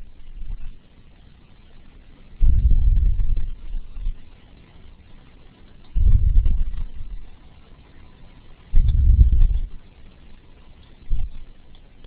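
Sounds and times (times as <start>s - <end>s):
low muffled rumbling: 0.0s - 1.1s, 1.9s - 4.5s, 5.8s - 7.6s, 8.6s - 10.1s, 11.0s - 12.0s.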